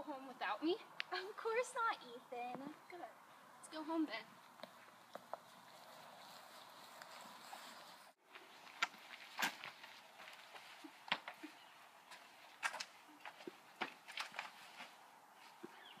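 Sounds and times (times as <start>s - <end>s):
footsteps on concrete: 4.3s - 7.4s, 8.2s - 16.0s.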